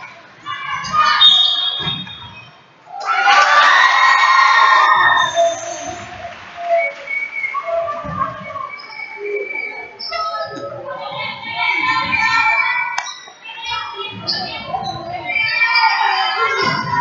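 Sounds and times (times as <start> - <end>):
girls shouting: 2.9 - 6.0
crowd cheering: 2.9 - 9.7.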